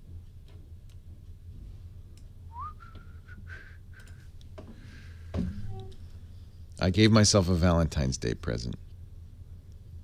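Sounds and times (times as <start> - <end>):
low steady hum: 0.0 - 10.0
person whistling: 2.5 - 4.2.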